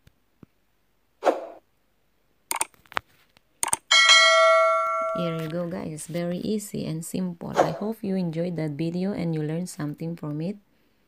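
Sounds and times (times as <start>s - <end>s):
notification bell chime: 3.9s - 5.6s.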